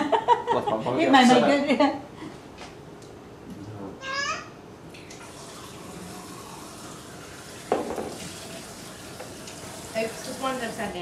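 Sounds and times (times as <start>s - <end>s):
tap water running into sink: 5.2s - 11.0s.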